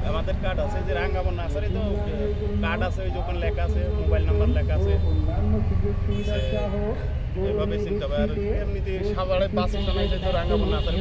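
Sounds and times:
low traffic rumble: 0.0s - 11.0s
men talking: 0.0s - 11.0s
distant vehicle horn toot: 6.1s - 6.8s, 9.7s - 11.0s.

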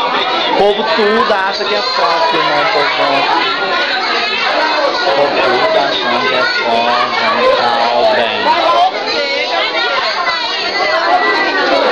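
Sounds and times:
crowd chatter: 0.0s - 11.9s.

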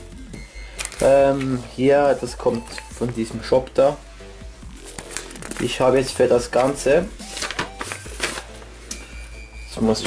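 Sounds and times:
paper rustling: 0.7s - 3.7s, 4.8s - 8.7s.

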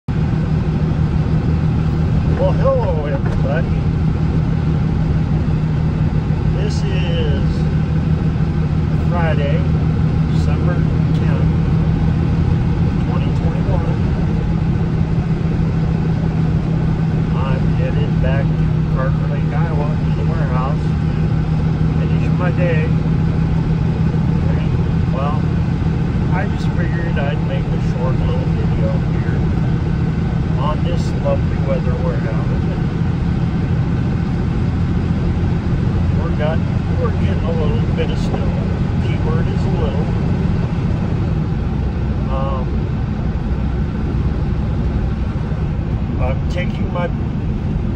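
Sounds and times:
engine and road noise drone: 0.0s - 47.9s.

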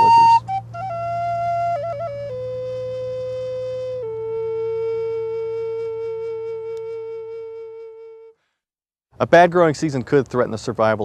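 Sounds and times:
flute playing slow melody: 0.0s - 8.5s.

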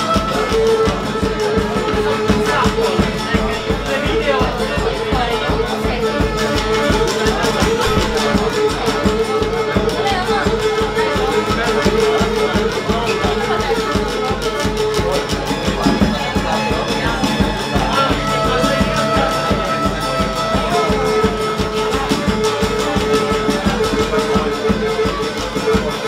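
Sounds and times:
plucked lute accompaniment: 0.0s - 15.2s
drum dance beat: 3.0s - 4.5s, 7.7s - 8.7s.

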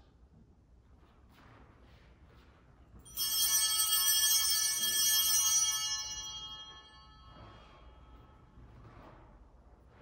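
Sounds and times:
small bells jingling: 3.1s - 8.4s.

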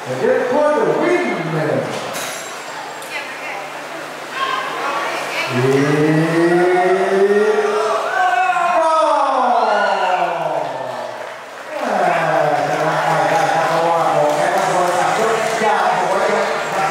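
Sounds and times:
man announcing over public address: 0.0s - 2.0s, 11.8s - 16.9s.

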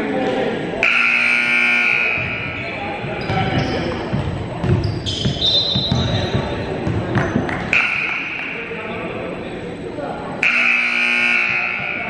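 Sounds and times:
scoreboard buzzer: 0.8s - 2.6s, 7.7s - 8.3s, 10.4s - 12.0s.

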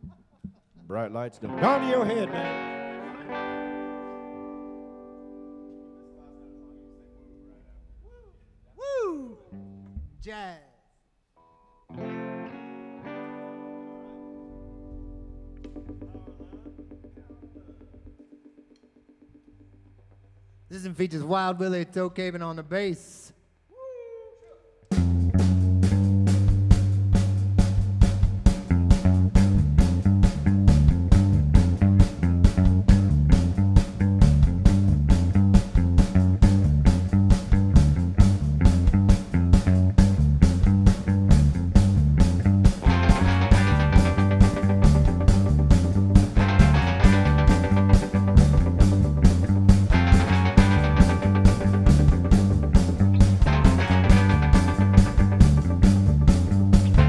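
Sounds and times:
electric guitar phrases: 1.3s - 8.1s, 11.4s - 21.4s, 24.9s - 57.0s
electric bass line: 14.5s - 18.3s, 24.9s - 57.0s
drum kit: 24.9s - 57.0s.

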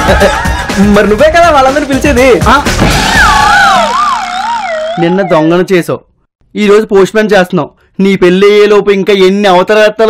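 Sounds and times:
wobbling tone sliding down: 3.2s - 5.6s.

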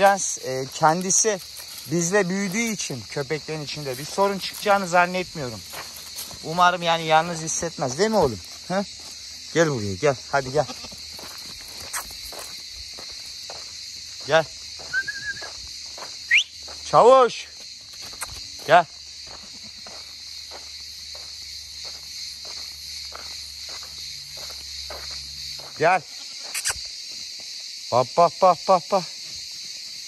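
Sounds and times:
footsteps on gravel: 0.0s - 27.6s
crickets chirring: 0.0s - 30.0s
insect chorus: 0.0s - 30.0s
wavering whistle-like note: 14.9s - 15.5s.

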